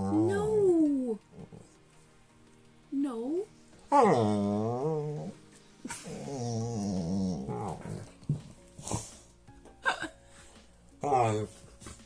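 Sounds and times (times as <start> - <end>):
dog growling: 0.0 - 1.8, 3.9 - 9.2, 11.0 - 12.0.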